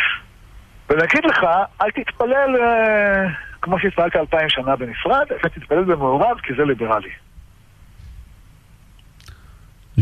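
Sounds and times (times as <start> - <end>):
man talking: 0.9 - 7.2.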